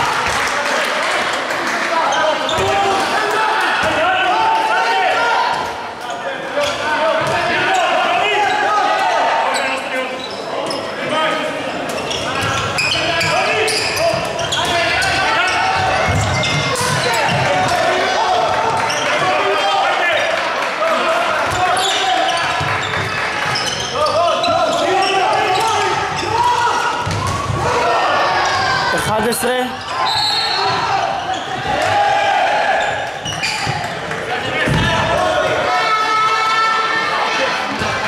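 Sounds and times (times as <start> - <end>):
people shouting in a hall: 0.0 - 38.0
ball bouncing on wooden court: 27.0 - 27.7, 33.3 - 35.2.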